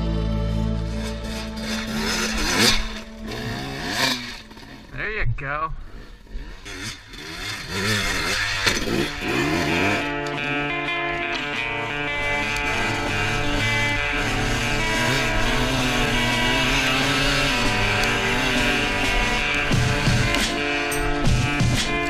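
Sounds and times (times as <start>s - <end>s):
background music: 0.0s - 5.1s, 7.6s - 22.0s
dirt bike engines revving: 0.4s - 22.0s.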